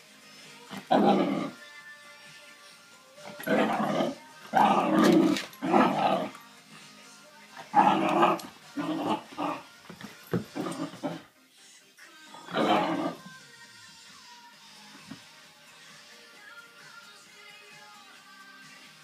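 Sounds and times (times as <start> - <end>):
dogs growling and barking: 0.7 - 1.7, 3.3 - 6.4, 7.6 - 11.3, 12.4 - 13.3.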